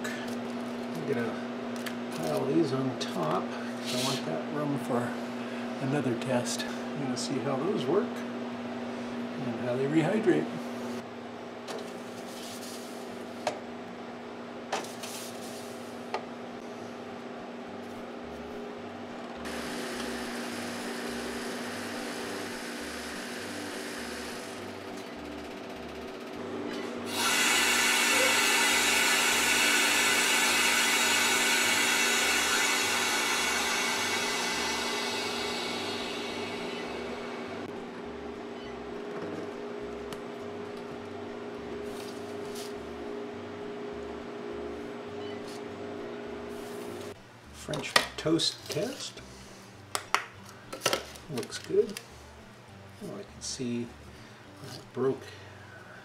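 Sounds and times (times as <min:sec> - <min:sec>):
steady hum: 0:00.0 - 0:56.0
air hissing into vacuum chamber: 0:27.1 - 0:37.7.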